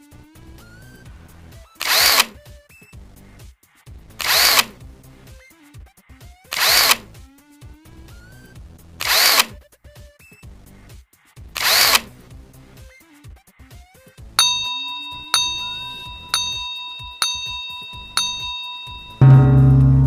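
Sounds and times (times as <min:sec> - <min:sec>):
ringing timer chimes: 0:14.4 - 0:20.0.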